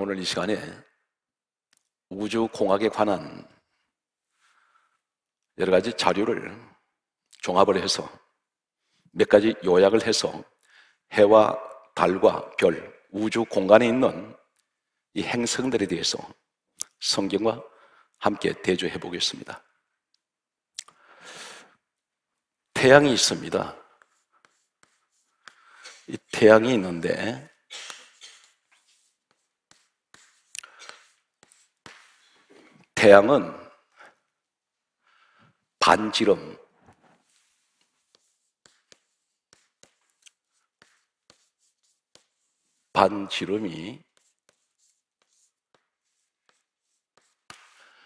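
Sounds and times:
chalk scratching on blackboard: 23.8s - 26.7s, 27.5s - 33.0s, 37.1s - 48.0s
chalk tapping on blackboard: 24.0s - 26.2s, 27.5s - 32.5s, 37.2s - 42.9s, 44.0s - 48.0s.

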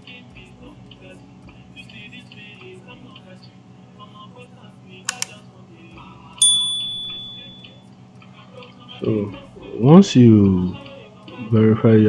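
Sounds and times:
mouse clicks: 5.1s - 5.3s
notification bell ding: 6.4s - 7.7s.

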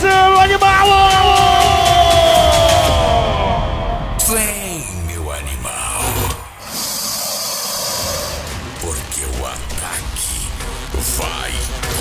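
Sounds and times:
party mix bass: 0.0s - 6.0s.

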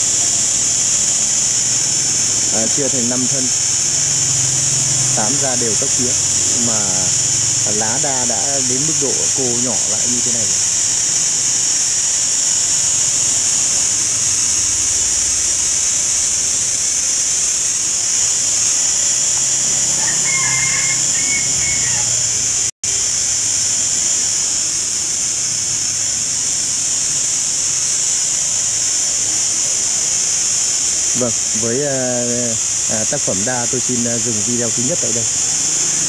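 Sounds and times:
cicadas droning: 0.0s - 36.0s.

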